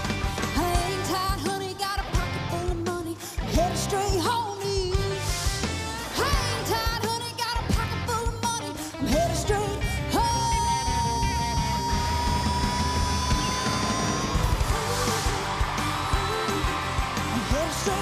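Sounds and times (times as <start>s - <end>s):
live country-rock band: 0.0s - 18.0s
woman singing: 0.6s - 5.2s, 6.1s - 18.0s.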